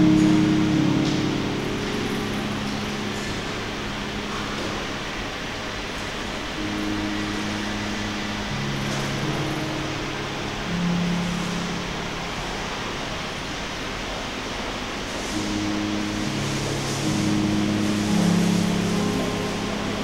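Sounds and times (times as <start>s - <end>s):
ambient electronic drone: 0.0s - 20.0s
steady noise hiss: 0.0s - 20.0s.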